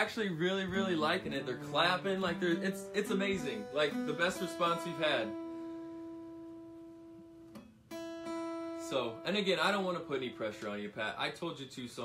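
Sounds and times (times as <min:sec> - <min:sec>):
acoustic guitar string plucked: 0:00.0 - 0:11.0.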